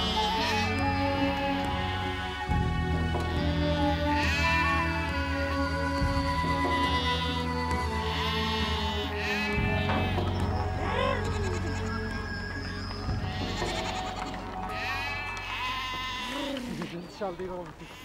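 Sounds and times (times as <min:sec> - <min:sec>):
background music with low drone: 0:00.0 - 0:17.7
goats and sheep bleating: 0:00.0 - 0:18.0.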